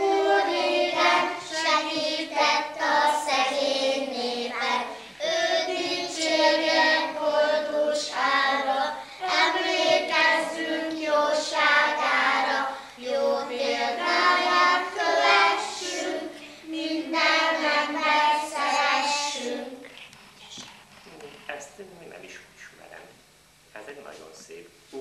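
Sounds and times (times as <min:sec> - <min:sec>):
children singing in chorus: 0:00.0 - 0:19.9.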